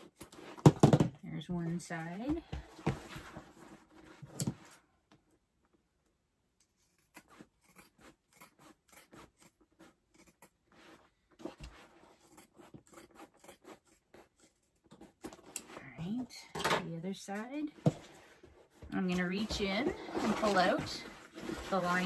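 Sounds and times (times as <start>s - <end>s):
bag rustling: 18.1s - 22.0s.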